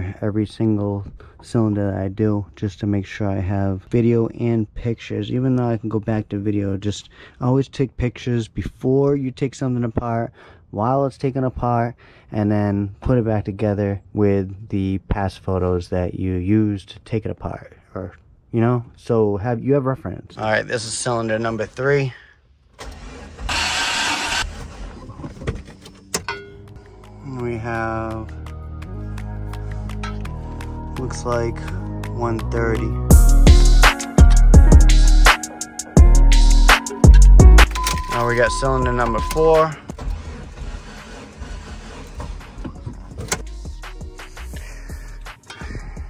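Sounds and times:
engine cranking by starter: 22.8 - 26.2, 37.6 - 44.6
background music: 25.8 - 39.8, 42.2 - 46.0.

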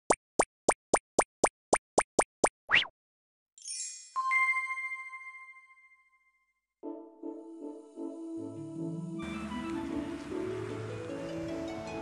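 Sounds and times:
cartoon plop sound effects: 0.0 - 2.9.

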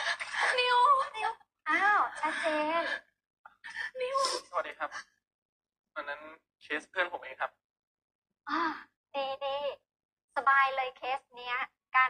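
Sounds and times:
drama dialogue speech: 0.2 - 3.0, 3.7 - 5.1, 6.0 - 7.6, 8.5 - 9.8, 10.4 - 12.0.

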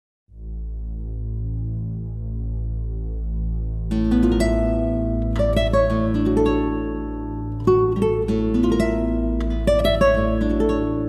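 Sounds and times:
plucked guitar music: 3.9 - 11.0.

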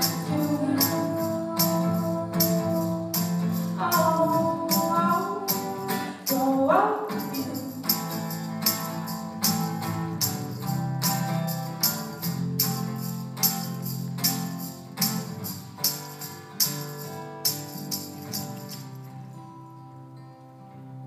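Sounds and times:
tambourine shakes: 0.0 - 19.2
acoustic guitar strumming: 0.0 - 21.0.

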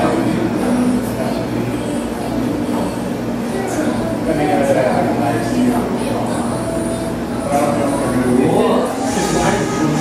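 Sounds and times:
indoor room rumble and hum: 0.0 - 10.0.

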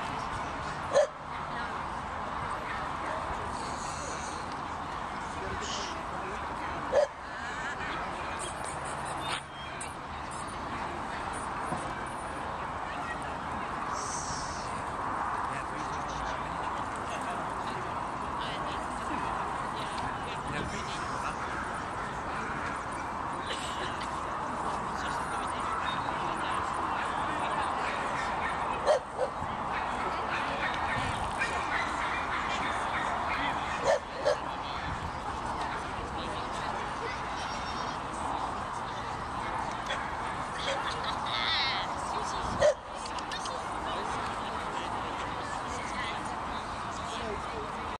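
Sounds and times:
murmur of voices: 0.0 - 47.9
people talking: 0.0 - 47.9
dog barking: 0.9 - 1.2.

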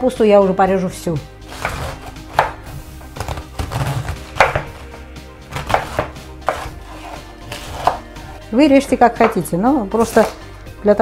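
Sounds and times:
knife chopping on wooden board: 1.5 - 8.4, 9.1 - 10.5.

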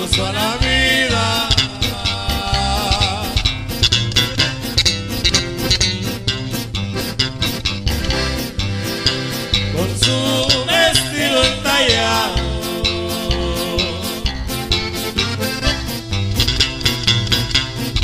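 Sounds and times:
bass and strings beat: 0.0 - 18.0
button accordion melody: 0.0 - 18.0.

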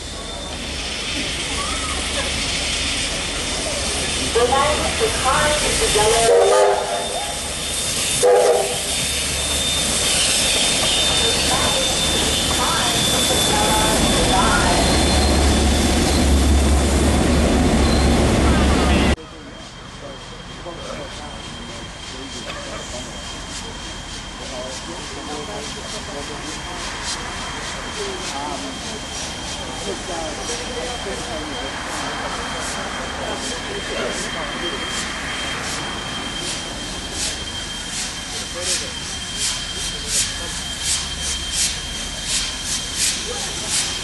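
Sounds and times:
crowd voices: 0.0 - 7.6, 8.2 - 15.6, 17.3 - 44.0
steam locomotive exhaust puffs: 0.0 - 17.4, 19.4 - 44.0
diesel locomotive idling: 0.0 - 44.0.

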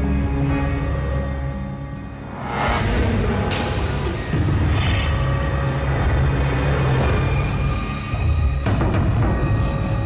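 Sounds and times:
ominous drone music: 0.0 - 10.0.

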